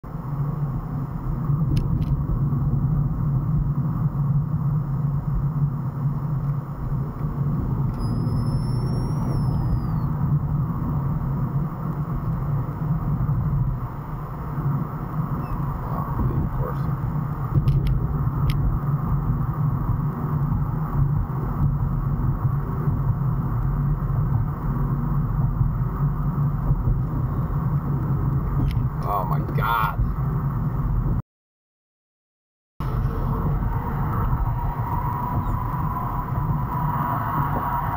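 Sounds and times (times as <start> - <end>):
car cabin road and engine noise: 0.0 - 31.2, 32.8 - 37.9.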